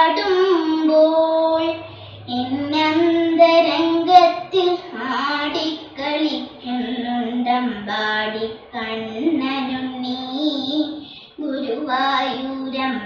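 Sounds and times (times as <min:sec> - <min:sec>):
girl singing classical style: 0:00.0 - 0:13.0.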